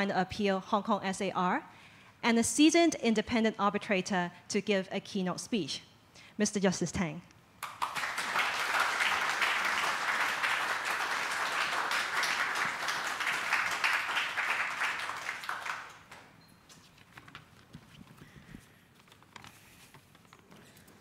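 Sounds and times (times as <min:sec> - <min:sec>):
audience applauding: 0:07.6 - 0:16.3.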